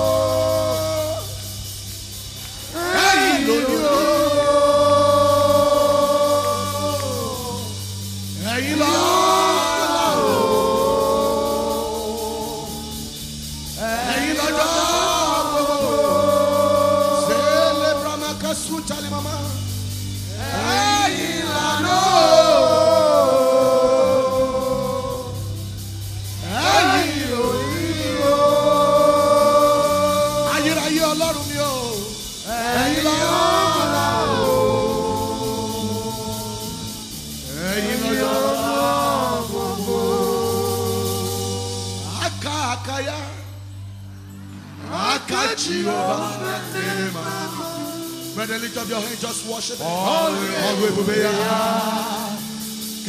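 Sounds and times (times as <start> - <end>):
steady low hum: 0.0 - 44.9
low bass accompaniment: 0.0 - 53.0
person singing gospel: 0.0 - 53.0.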